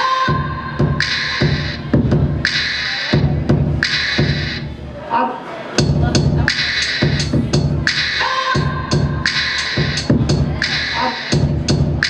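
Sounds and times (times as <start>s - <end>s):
electronic dance beat: 0.0s - 4.8s, 5.8s - 12.0s.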